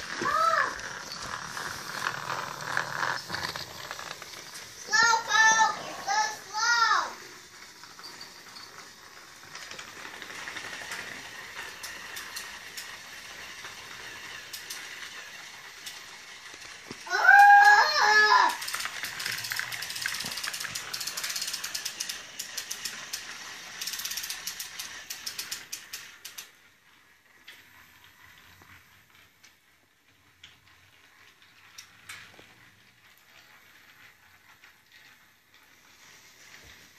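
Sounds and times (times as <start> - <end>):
toy train motor whirring: 0.0 - 36.9
wheels clicking over track joints: 0.0 - 36.9.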